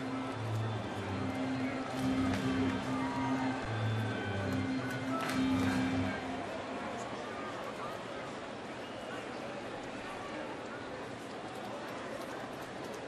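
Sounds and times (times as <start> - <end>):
stadium music over sound system: 0.0 - 6.6
crowd murmur: 0.0 - 13.0.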